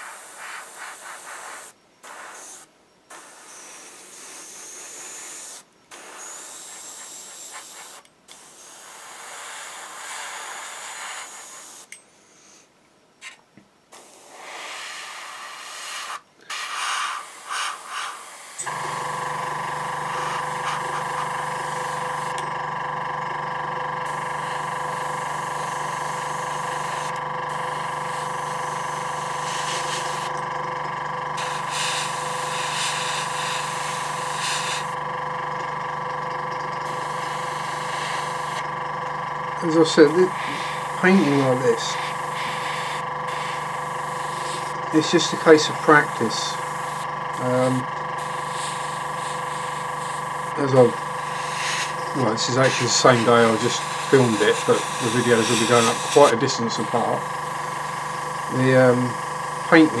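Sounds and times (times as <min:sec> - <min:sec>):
airbrush spraying hiss: 0:00.0 - 0:11.9, 0:13.9 - 0:19.1, 0:20.0 - 0:22.3, 0:24.1 - 0:30.3, 0:31.4 - 0:35.0, 0:36.9 - 0:38.6, 0:39.6 - 0:59.0
compressor motor humming: 0:18.4 - 1:00.0.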